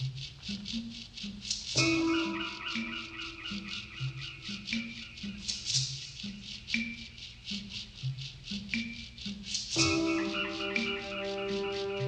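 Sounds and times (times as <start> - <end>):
film score music: 0.0 - 12.0
high percussion stroke: 8.7 - 12.0.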